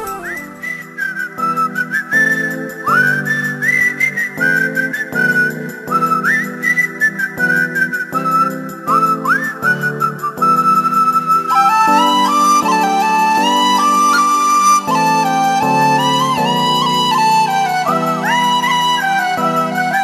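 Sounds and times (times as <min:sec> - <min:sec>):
whistle-like wordless melody: 0:00.0 - 0:20.0.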